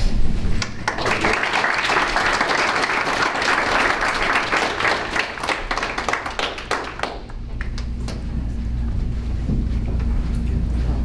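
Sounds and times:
audience applauding: 0:00.6 - 0:07.8.

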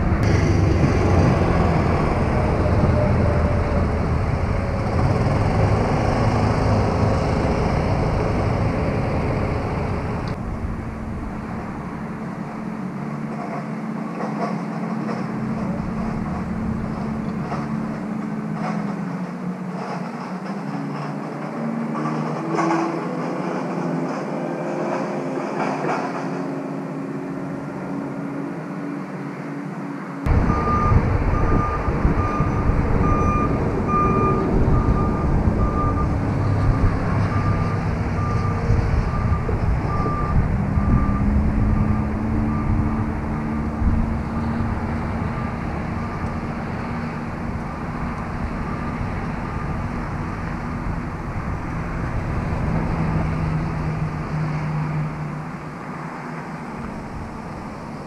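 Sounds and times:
loud low rumble: 0:00.0 - 0:12.1, 0:30.3 - 0:37.4
engine running: 0:00.0 - 0:24.3, 0:30.2 - 0:58.0
reversing beeper: 0:30.3 - 0:43.0.

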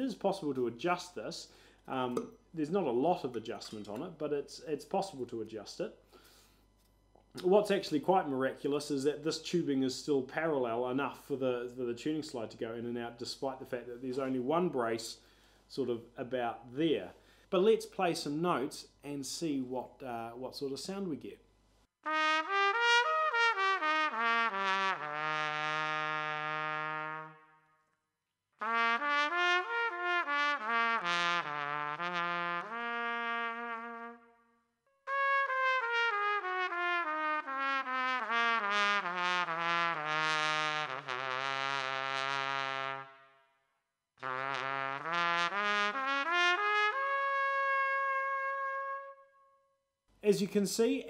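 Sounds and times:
trumpet playing: 0:22.0 - 0:27.8, 0:28.6 - 0:49.6.

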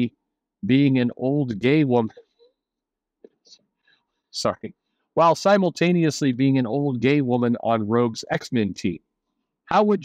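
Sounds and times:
man talking: 0:00.0 - 0:02.2, 0:04.3 - 0:09.0, 0:09.6 - 0:10.0.

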